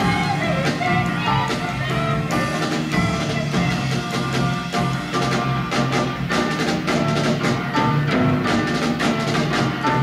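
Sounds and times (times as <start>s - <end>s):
band music with piano and guitar: 0.0s - 10.0s.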